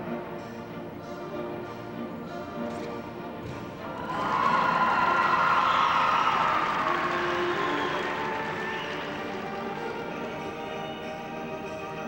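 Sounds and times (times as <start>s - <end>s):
audience applause and cheering: 3.9s - 11.0s.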